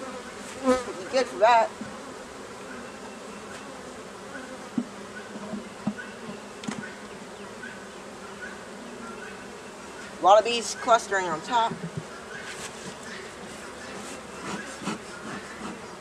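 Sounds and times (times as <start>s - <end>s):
honeybees buzzing: 0.0s - 16.0s
wooden hive frames knocking: 4.7s - 6.9s, 11.4s - 15.8s.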